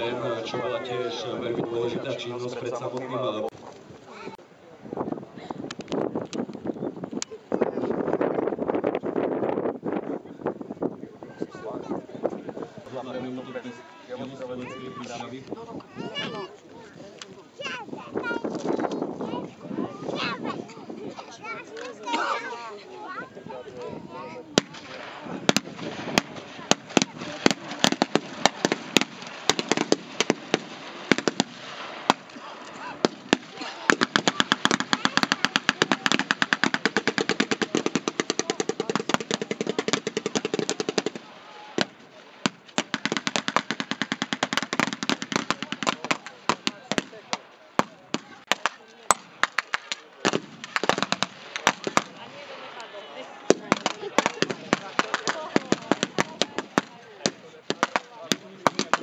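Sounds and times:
rapid machine-gun fire: 24.6 - 32.3, 33.0 - 41.3, 42.8 - 47.1, 50.3 - 52.1
scattered rifle shots: 24.6 - 32.4, 33.0 - 41.9.

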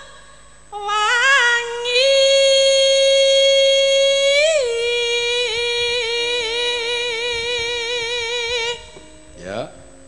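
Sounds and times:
woman singing a long high note: 0.0 - 9.3.

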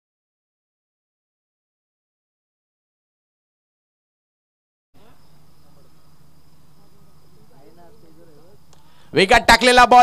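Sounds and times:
distant voices calling: 5.0 - 10.0.

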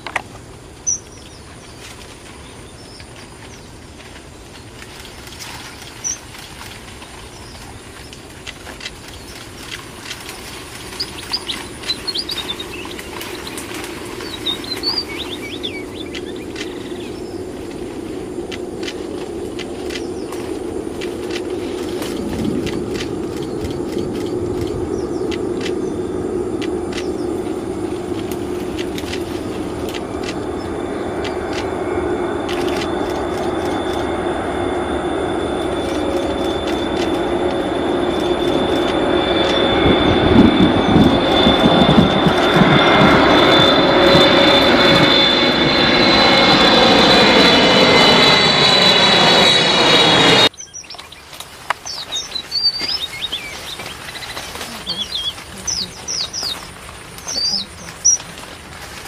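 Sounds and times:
engine drone: 0.0 - 59.0.

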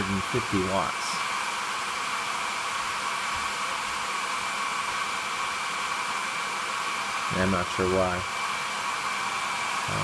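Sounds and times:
hair dryer blowing: 0.0 - 10.0.

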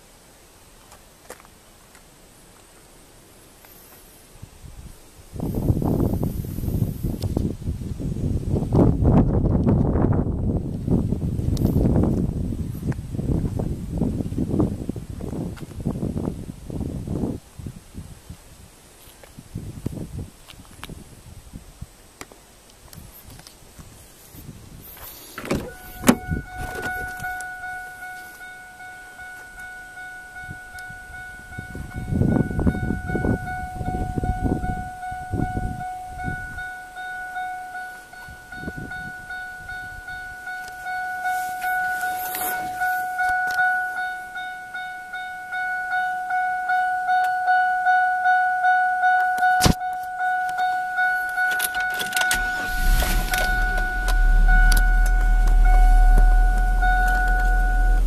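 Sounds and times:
car door clicking open: 25.4 - 27.4
car door warning chime: 25.4 - 52.8
low rumble: 25.6 - 28.0, 52.1 - 58.0.

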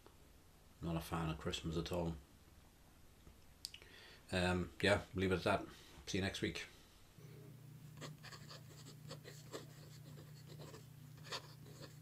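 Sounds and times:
steady low hum: 4.2 - 12.0
pen scratching on paper: 8.0 - 12.0.

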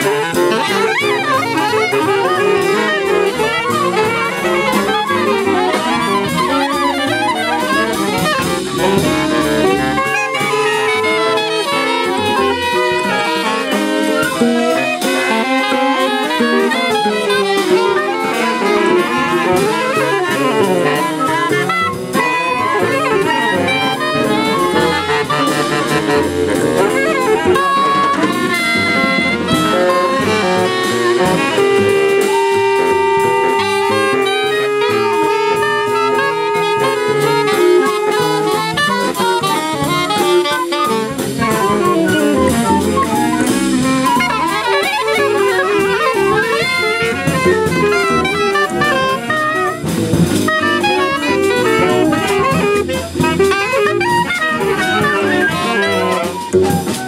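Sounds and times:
free jazz saxophones: 0.0 - 57.0.

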